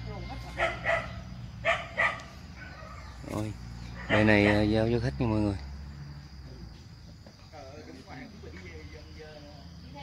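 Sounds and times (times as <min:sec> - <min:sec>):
dog barking: 0:00.6 - 0:03.2, 0:03.9 - 0:04.8.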